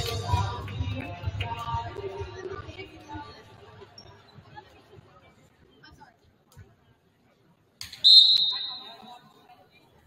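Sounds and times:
referee's whistle blast: 8.0s - 9.0s.

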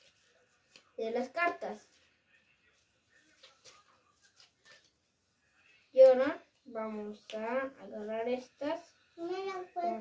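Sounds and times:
playing cards clicking and rustling: 0.0s - 2.1s, 3.2s - 5.0s
child speaking: 6.0s - 10.0s.

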